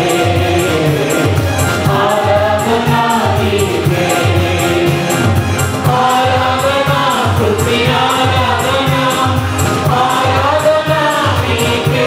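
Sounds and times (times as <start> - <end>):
choir singing praise song: 0.0 - 12.0
instrumental accompaniment with beat: 0.0 - 12.0.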